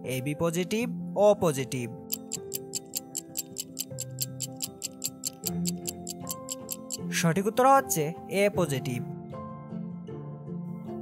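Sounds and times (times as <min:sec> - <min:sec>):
soft background music: 0:00.0 - 0:11.0
stopwatch ticking rapidly: 0:02.1 - 0:07.1.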